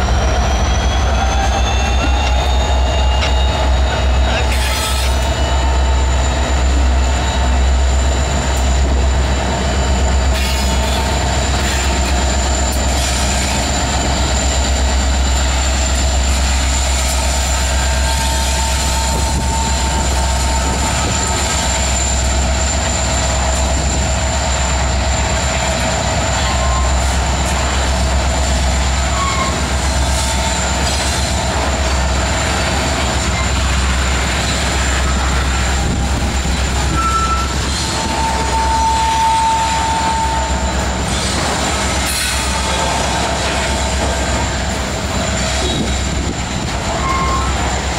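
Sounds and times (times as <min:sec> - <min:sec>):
diesel locomotive engines rumbling: 0:00.0 - 0:47.9
high-pitched wheel squeal: 0:00.2 - 0:47.9.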